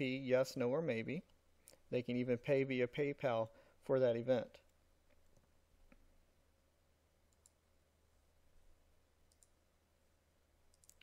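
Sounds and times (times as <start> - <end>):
computer mouse clicks: 7.3 - 7.6, 9.3 - 9.6, 10.7 - 11.0.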